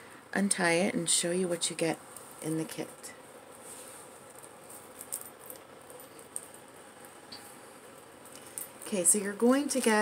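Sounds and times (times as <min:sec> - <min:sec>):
fabric rustling: 0:02.0 - 0:10.0.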